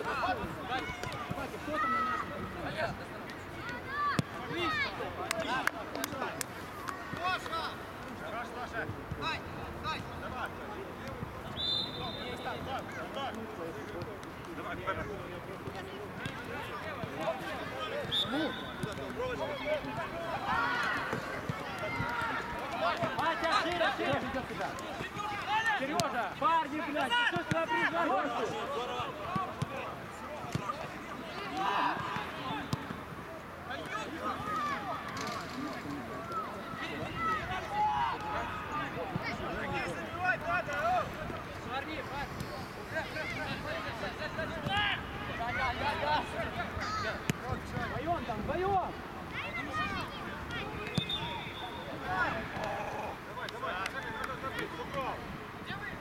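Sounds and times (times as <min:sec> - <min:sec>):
players shouting: 0:00.0 - 0:10.5, 0:15.8 - 0:56.0.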